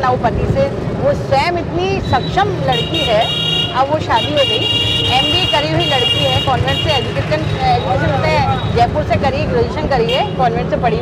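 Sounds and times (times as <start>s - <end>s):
low rumble of street traffic: 0.0s - 11.0s
woman talking: 0.0s - 11.0s.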